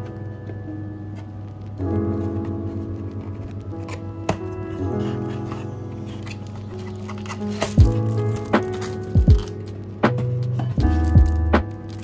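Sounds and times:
background music sustained notes: 0:00.0 - 0:12.0
cardboard scraping and tapping: 0:02.1 - 0:12.0
cardboard flap snapping: 0:06.2 - 0:12.0.

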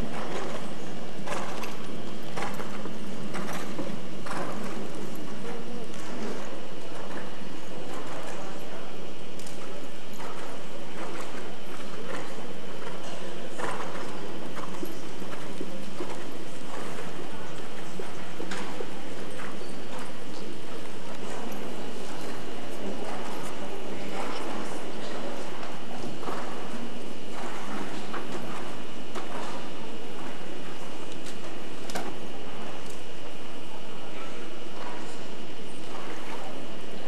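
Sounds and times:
horse hoofbeats on sand: 0:09.4 - 0:33.4.

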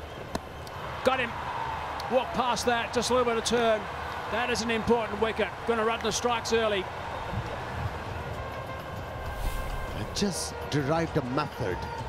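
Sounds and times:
low rumbling ground noise: 0:09.2 - 0:10.3.

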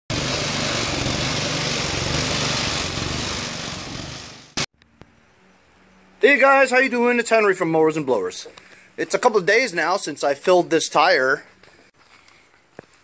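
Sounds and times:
lawn tractor engine running: 0:00.1 - 0:04.7.

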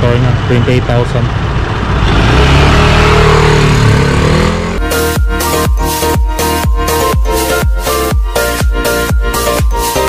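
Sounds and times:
scooter engine revving: 0:00.3 - 0:06.2
electronic dance music: 0:04.8 - 0:10.0.

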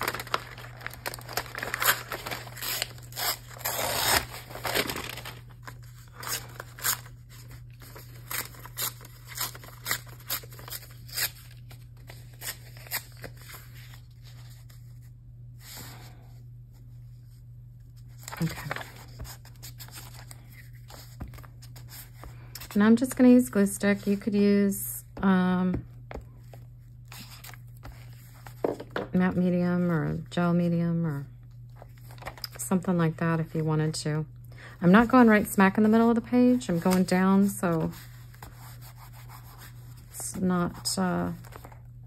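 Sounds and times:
paper envelope tearing: 0:00.0 - 0:14.0, 0:18.2 - 0:21.0
paper rustling: 0:00.0 - 0:15.9, 0:18.0 - 0:23.1.

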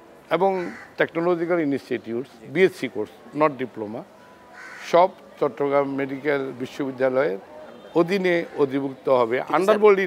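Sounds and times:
man speaking: 0:08.0 - 0:10.0.

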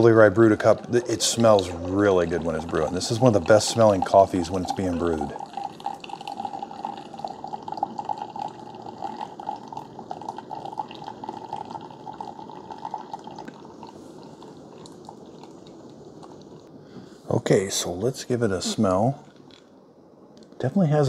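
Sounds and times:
coffee trickling into a mug: 0:00.0 - 0:16.7.

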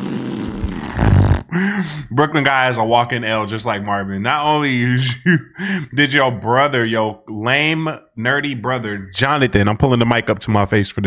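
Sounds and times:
burst of air on microphone: 0:00.0 - 0:01.8.

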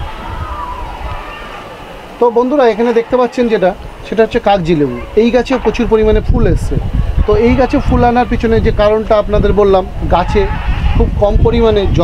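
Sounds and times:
man talking: 0:02.2 - 0:12.0.

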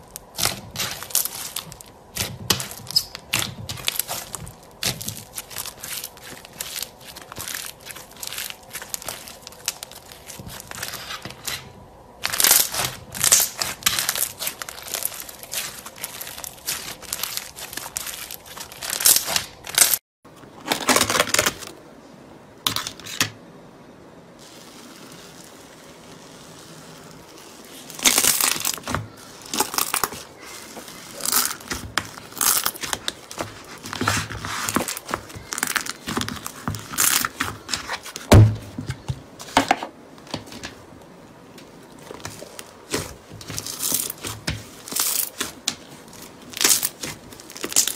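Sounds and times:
slime crackling and popping: 0:00.1 - 0:11.6, 0:12.2 - 0:20.0, 0:24.4 - 0:37.9, 0:42.1 - 0:47.9.

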